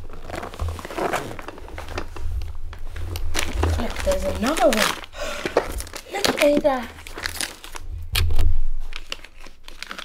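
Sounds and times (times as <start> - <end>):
cardboard box scraping: 0.1 - 2.0.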